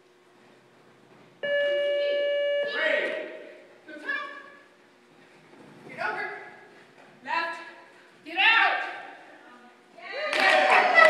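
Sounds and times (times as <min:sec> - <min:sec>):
buzzer steady tone: 0:01.4 - 0:03.0.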